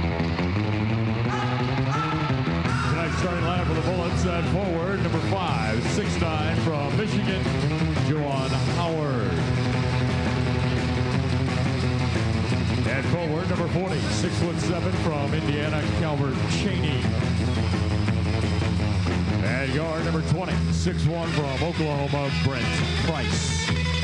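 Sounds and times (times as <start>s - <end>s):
arena music: 0.0s - 24.0s
announcer calling out names: 1.2s - 9.5s, 12.8s - 17.2s, 19.4s - 23.7s.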